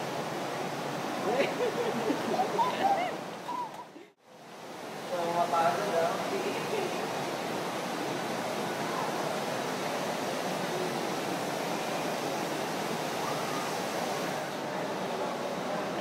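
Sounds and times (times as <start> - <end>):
continuous hiss: 0.0 - 16.0.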